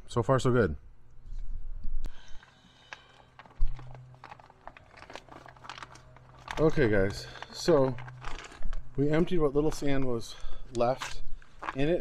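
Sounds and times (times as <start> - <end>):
bags clicking and rustling: 2.3 - 10.0, 11.4 - 12.0.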